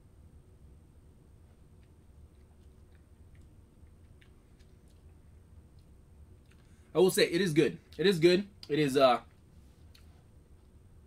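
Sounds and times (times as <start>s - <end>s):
low room hum: 0.0s - 11.0s
mouth and lip clicks: 1.7s - 6.8s.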